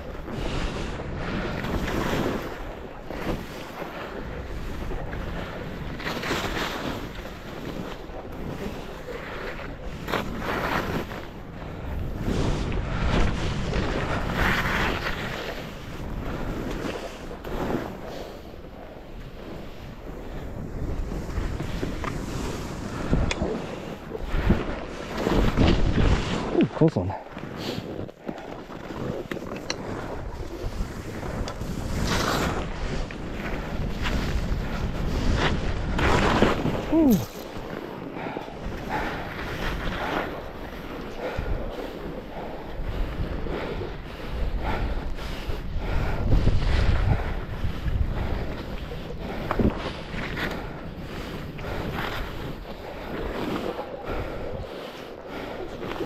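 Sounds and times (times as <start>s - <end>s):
wind rumbling on microphone: 0.0s - 56.0s
skis hissing through snow: 30.6s - 33.0s.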